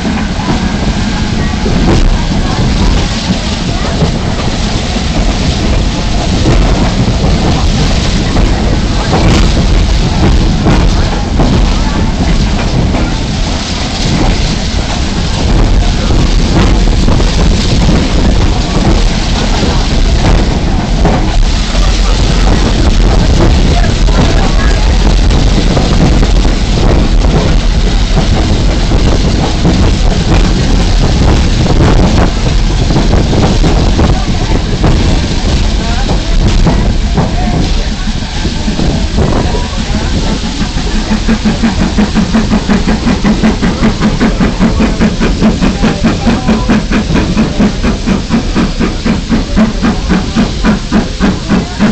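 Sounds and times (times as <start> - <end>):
indistinct voices: 0.0 - 51.9
train rumbling: 0.0 - 51.9
wind buffeting microphone: 0.0 - 51.9.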